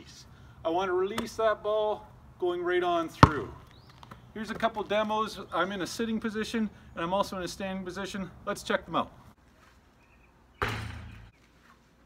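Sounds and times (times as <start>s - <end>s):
basketball hitting backboard and rim: 3.2s - 3.6s, 10.6s - 11.3s.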